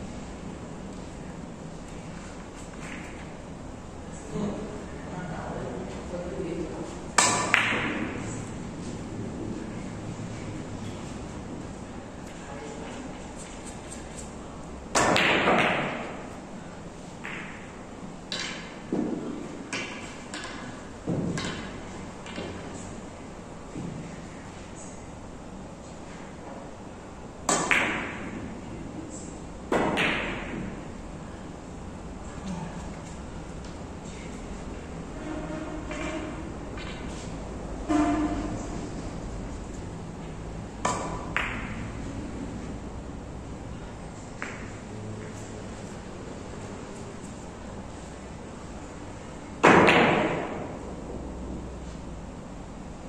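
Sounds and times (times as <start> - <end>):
billiard balls colliding: 2.5 - 3.4, 7.1 - 8.8, 14.9 - 16.4, 17.2 - 22.7, 27.4 - 28.6, 29.7 - 30.9, 35.2 - 37.2, 40.8 - 42.1, 44.4 - 44.9, 49.6 - 51.1
cue striking billiard ball: 7.2 - 8.3, 14.9 - 16.3, 27.5 - 28.4, 29.7 - 30.8, 40.8 - 41.9, 49.6 - 50.9.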